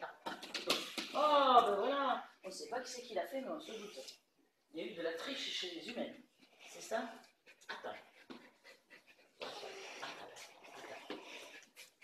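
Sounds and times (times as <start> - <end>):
small dog panting: 5.9 - 12.0.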